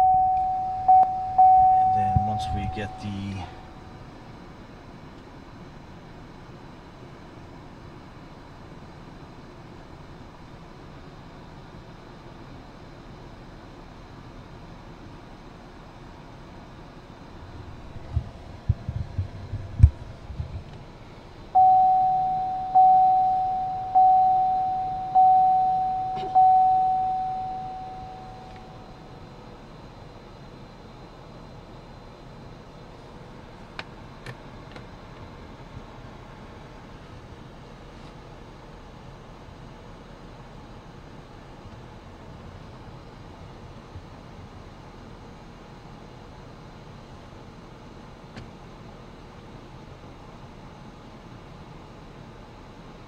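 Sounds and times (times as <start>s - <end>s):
car warning chime dinging: 0.0s - 4.1s, 21.5s - 29.3s.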